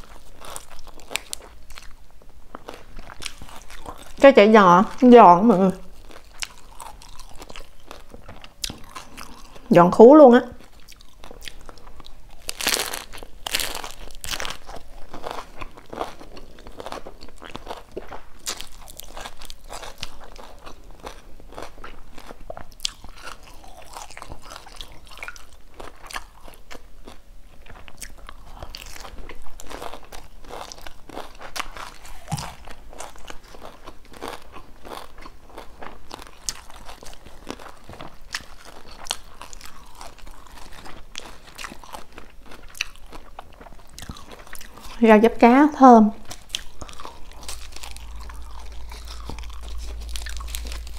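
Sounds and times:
crunchy chewing of fried food: 0.0s - 9.7s, 10.5s - 45.2s, 46.2s - 50.9s.

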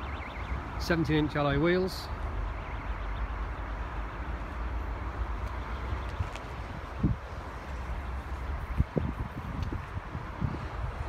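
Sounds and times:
wind buffeting microphone: 5.8s - 11.0s.

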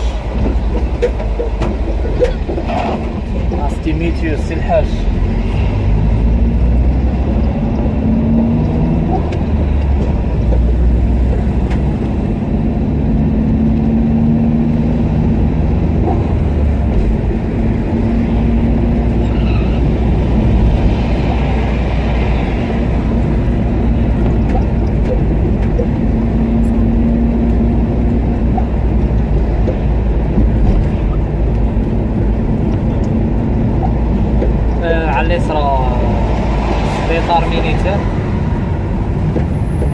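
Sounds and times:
car engine and road rumble: 0.0s - 39.9s.

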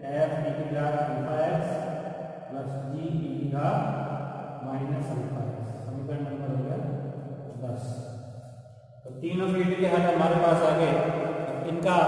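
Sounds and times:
man speaking drawn-out syllables: 0.0s - 1.8s, 2.5s - 3.8s, 4.6s - 6.8s, 9.1s - 12.0s.

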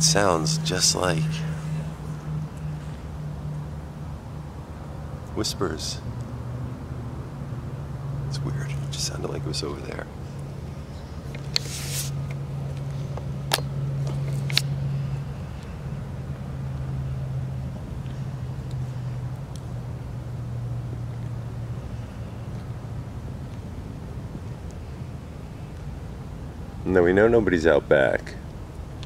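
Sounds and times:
low steady hum: 0.0s - 29.0s
short hiss: 11.6s - 12.2s.

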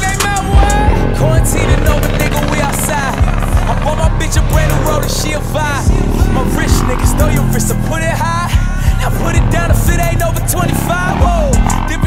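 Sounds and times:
hip-hop music with bass beat: 0.0s - 12.0s
motorcycle engines revving: 0.0s - 12.0s.

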